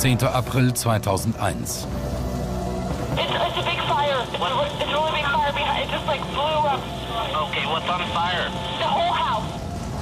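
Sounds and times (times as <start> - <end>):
woman talking over telephone: 3.2 - 6.7
dispatcher talking over telephone: 3.2 - 9.6.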